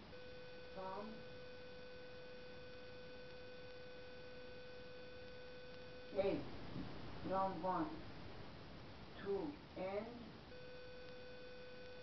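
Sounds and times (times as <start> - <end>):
steady electronic beep tone: 10.5 - 12.0.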